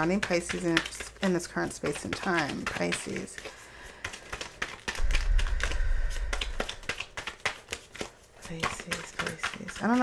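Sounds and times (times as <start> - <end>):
cards being shuffled: 0.0 - 10.0
low rumble: 5.0 - 6.6.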